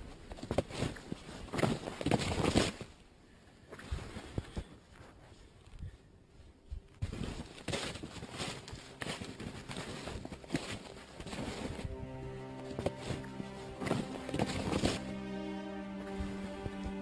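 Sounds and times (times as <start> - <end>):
snowshoes crunching through snow: 0.1 - 3.0, 6.8 - 17.0
background music: 8.1 - 17.0.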